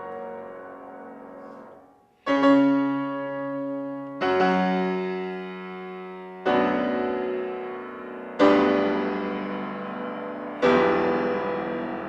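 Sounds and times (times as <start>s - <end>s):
grand piano chords ringing: 0.0s - 12.0s.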